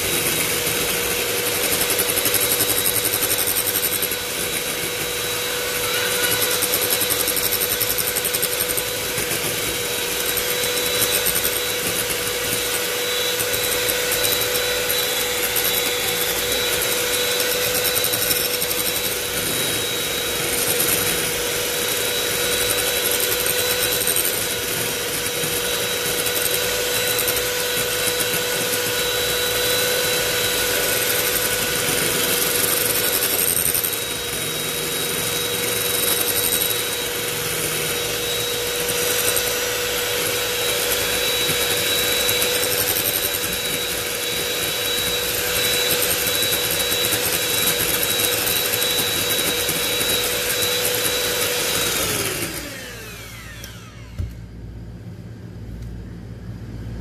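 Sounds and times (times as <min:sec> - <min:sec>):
beaters whipping cream in glass bowl: 0:00.0 - 0:54.1
electric hand mixer whining: 0:00.0 - 0:54.5.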